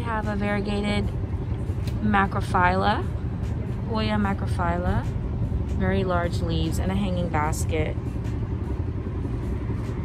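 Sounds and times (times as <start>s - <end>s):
steady low outdoor rumble: 0.0s - 10.0s.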